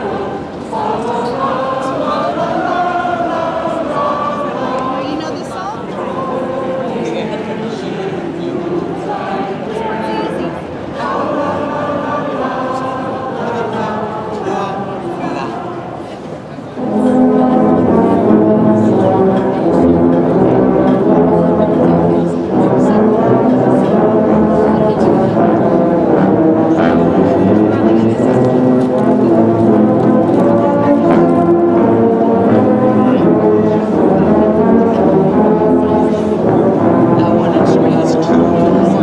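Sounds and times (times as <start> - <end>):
tubas playing low brass chords: 16.7 - 39.0.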